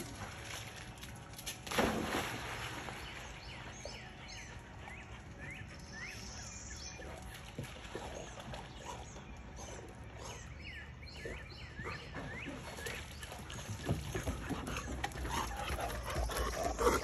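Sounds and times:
water splashing and dripping: 0.0s - 3.4s.

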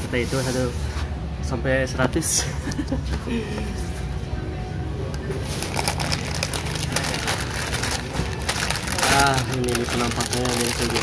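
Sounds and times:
plastic bag crackling: 5.4s - 11.0s.

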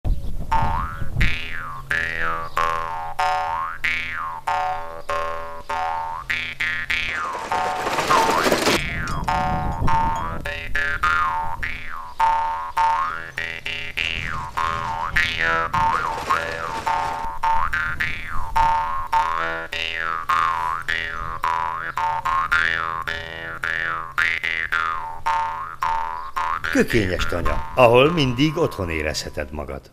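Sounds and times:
twangy instrumental music: 0.5s - 18.2s.

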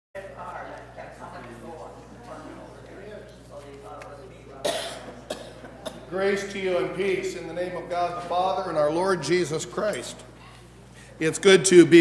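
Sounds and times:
person coughing: 4.6s - 6.1s.

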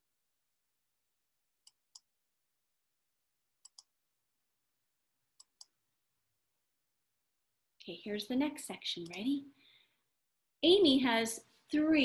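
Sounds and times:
computer mouse clicks: 1.6s - 2.1s, 3.6s - 4.0s, 5.3s - 5.8s, 9.0s - 9.3s.

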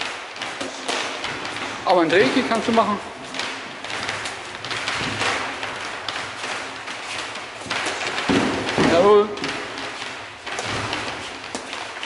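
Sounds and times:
punches and kicks thudding: 3.1s - 11.8s.

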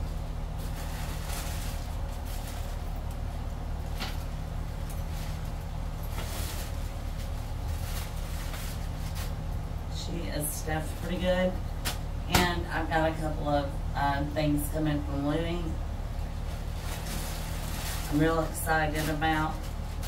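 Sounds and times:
steady low hum: 0.0s - 20.0s
paper rustling and crinkling: 0.5s - 3.3s, 3.9s - 9.5s, 16.4s - 20.0s.

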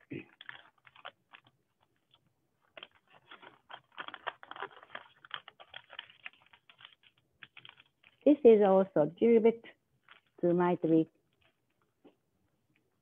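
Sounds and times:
paper crinkling and rustling: 0.2s - 8.4s, 10.0s - 10.5s, 11.2s - 11.9s.

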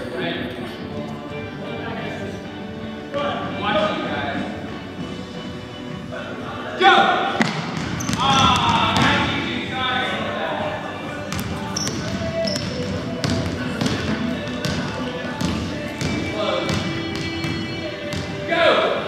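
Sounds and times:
indistinct voices: 0.0s - 19.0s
basketballs bouncing on hardwood: 7.4s - 9.4s, 11.3s - 18.4s.

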